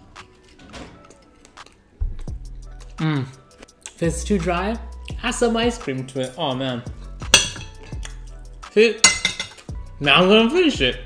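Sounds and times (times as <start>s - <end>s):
cutlery scraping a ceramic plate: 9.0s - 9.6s.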